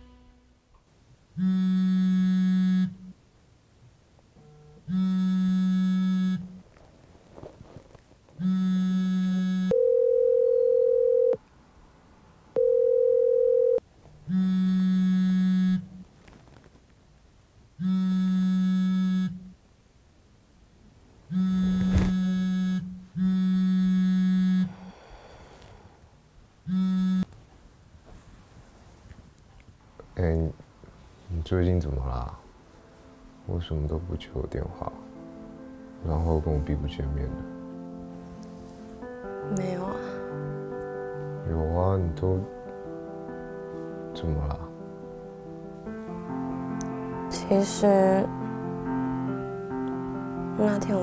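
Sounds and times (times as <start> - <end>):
phone vibrating on wood: 1.4 - 3.2, 4.4 - 6.6, 8.4 - 11.3, 12.7 - 16.0, 17.8 - 19.6, 21.3 - 24.8, 26.7 - 27.3.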